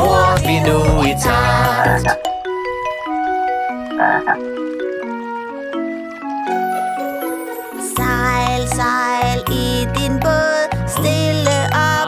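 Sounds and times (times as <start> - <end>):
plucked mallet-like melody: 0.0 - 5.2, 6.4 - 10.4
cartoon frog croaks: 1.4 - 2.2, 4.0 - 4.4.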